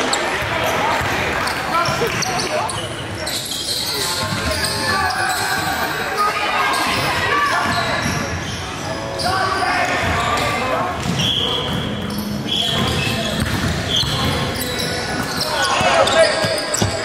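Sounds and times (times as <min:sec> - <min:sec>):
players chattering and calling: 0:00.0 - 0:17.0
basketballs bouncing on hardwood floor: 0:11.0 - 0:12.2, 0:12.8 - 0:17.0.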